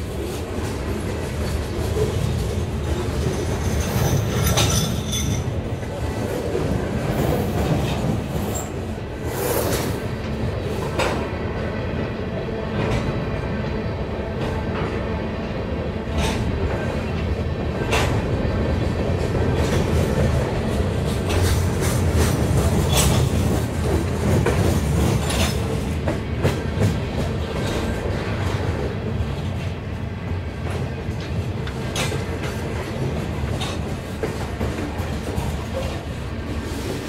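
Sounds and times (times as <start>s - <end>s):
train wheels rumbling on rails: 0.0s - 37.0s
wheels clacking over rail joint: 0.3s - 8.7s, 16.1s - 28.8s, 30.6s - 36.1s.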